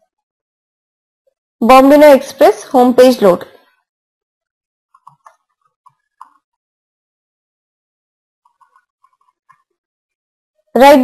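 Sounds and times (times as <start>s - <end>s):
faint keyboard typing: 4.9s - 6.6s, 8.4s - 9.8s.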